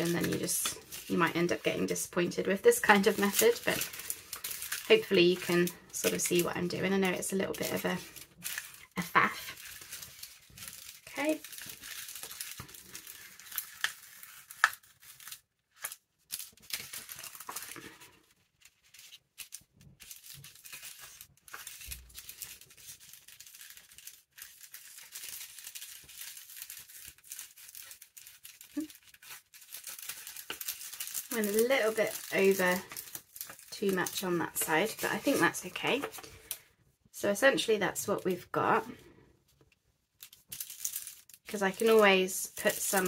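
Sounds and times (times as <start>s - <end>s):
paper crinkling and rustling: 0.0s - 36.7s, 39.5s - 43.0s.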